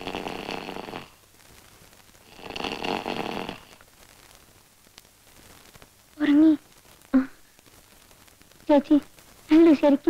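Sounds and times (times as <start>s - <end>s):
person snoring: 0.0s - 1.2s, 2.3s - 3.8s.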